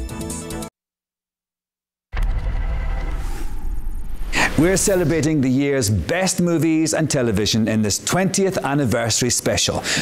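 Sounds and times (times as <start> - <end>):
news sting deep rumble: 2.2 - 6.1.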